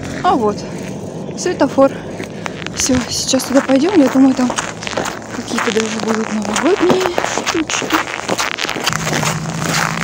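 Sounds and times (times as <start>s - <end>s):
steady low hum: 0.0s - 10.0s
fabric rustling against microphone: 2.3s - 10.0s.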